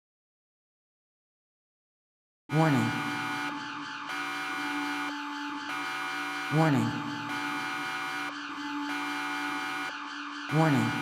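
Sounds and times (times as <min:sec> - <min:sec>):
electronic alarm drone: 0:02.5 - 0:11.0.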